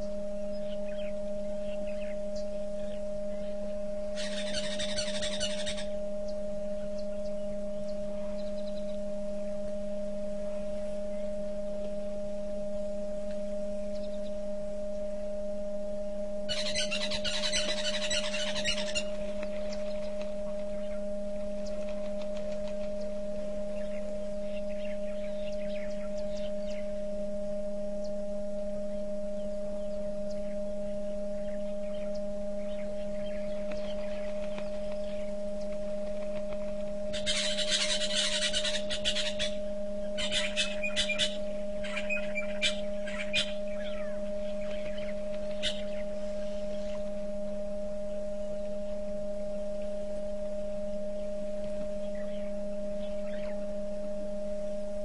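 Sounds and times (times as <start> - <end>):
birds chirping: 0.0 - 9.1, 16.5 - 27.0, 28.9 - 47.2, 52.0 - 53.7
high steady tone: 0.0 - 55.0
low electrical hum: 0.0 - 55.0.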